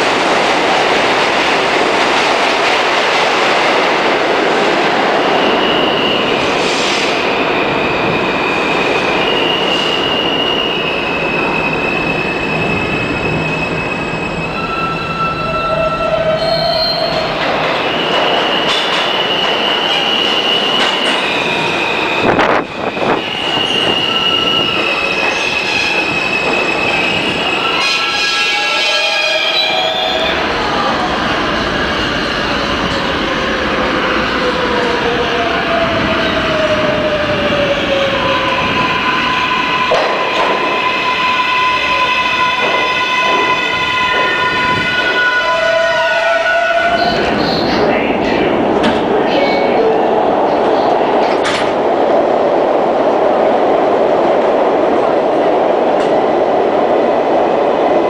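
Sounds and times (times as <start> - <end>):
subway train rumble: 0.0 - 58.0.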